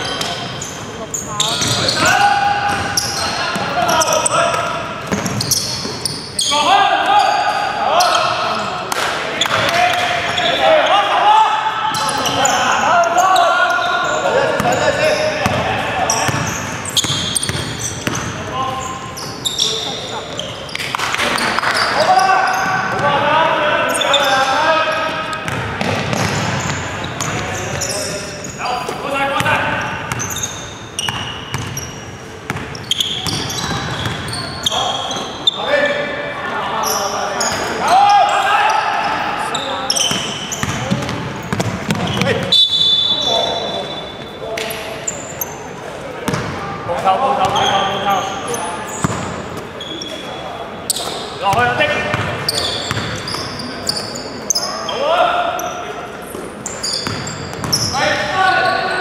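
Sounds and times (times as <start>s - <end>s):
players calling out: 0.0s - 59.0s.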